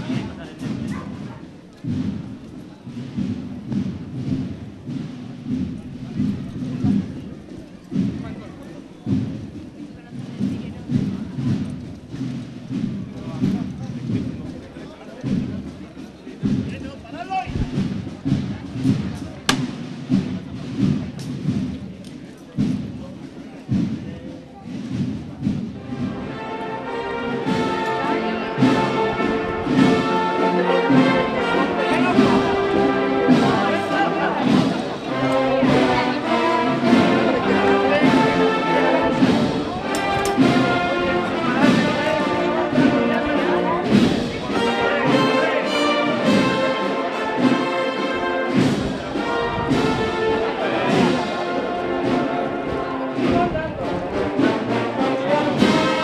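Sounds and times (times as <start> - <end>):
drums beating march rhythm: 0.0 - 56.0
processional march band: 0.0 - 56.0.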